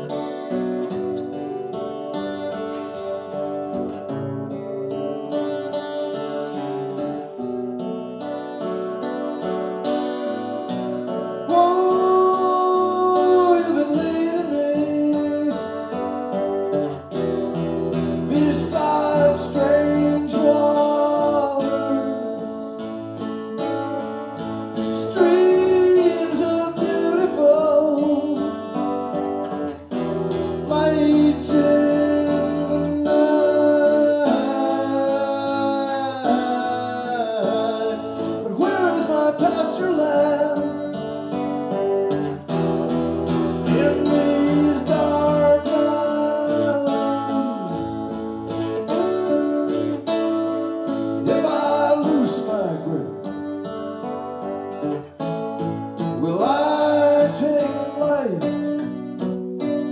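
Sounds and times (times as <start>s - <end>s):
acoustic guitar playing: 0.0s - 59.9s
man singing: 10.4s - 53.7s, 56.0s - 59.9s.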